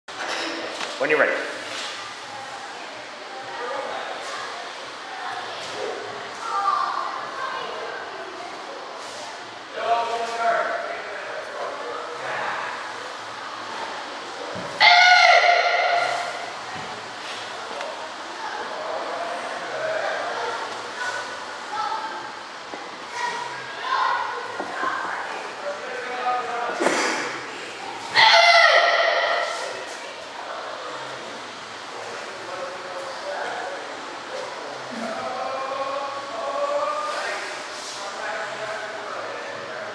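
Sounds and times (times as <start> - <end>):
child shouting: 14.8 - 16.4, 28.2 - 29.5.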